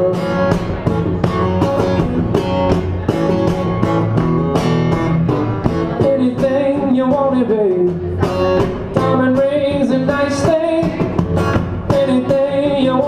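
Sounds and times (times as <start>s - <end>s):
acoustic guitar strumming: 0.0s - 13.0s.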